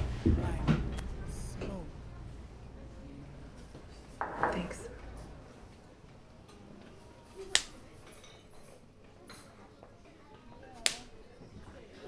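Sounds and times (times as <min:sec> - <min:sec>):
sharp finger snaps: 0:07.5 - 0:07.8, 0:10.8 - 0:11.1.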